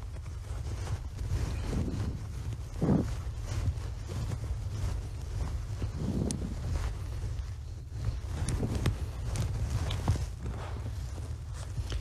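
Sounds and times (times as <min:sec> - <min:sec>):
bee suit rustling: 0:00.0 - 0:12.0
light footsteps: 0:00.0 - 0:12.0
steady low hum: 0:00.0 - 0:12.0.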